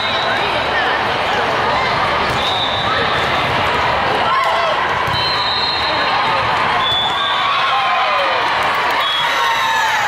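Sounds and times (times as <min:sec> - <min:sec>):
many overlapping voices: 0:00.0 - 0:10.0.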